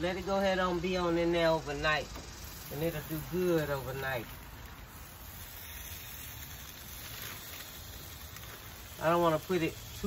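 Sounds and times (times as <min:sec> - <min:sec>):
wood fire hissing and crackling: 0:00.0 - 0:10.0.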